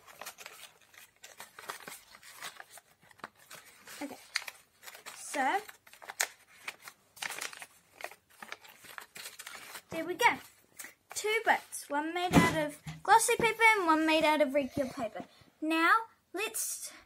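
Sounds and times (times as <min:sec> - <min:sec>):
paper crinkling and rustling: 0:00.0 - 0:11.9.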